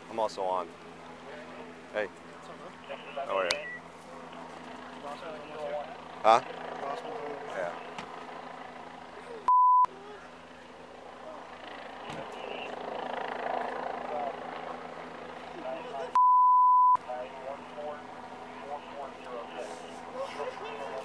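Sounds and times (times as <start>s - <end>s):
outdoor background noise: 0.0s - 21.0s
faint voices: 1.0s - 16.2s, 17.0s - 21.0s
censoring bleeps: 9.5s - 9.9s, 16.2s - 17.0s.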